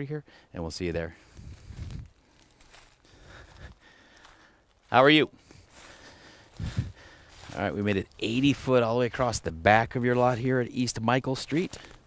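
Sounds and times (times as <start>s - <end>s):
footsteps on dry leaves: 1.1s - 12.0s.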